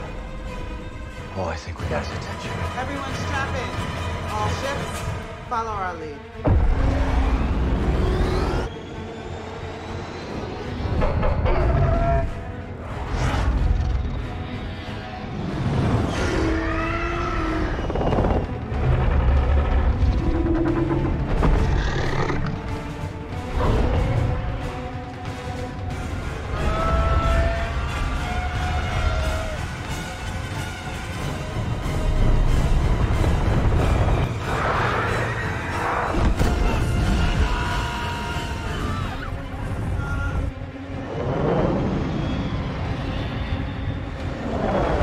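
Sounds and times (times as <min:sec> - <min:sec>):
orchestral film music: 0:00.0 - 0:45.0.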